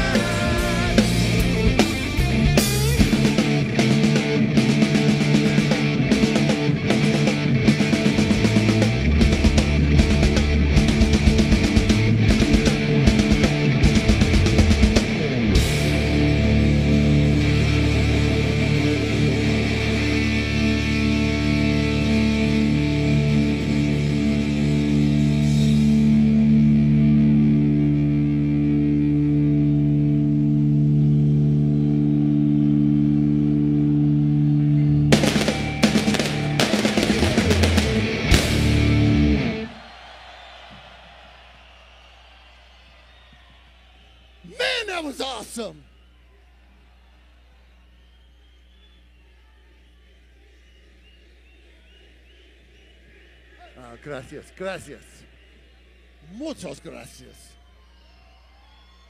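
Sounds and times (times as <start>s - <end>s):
hard rock band playing: 0.0s - 39.8s.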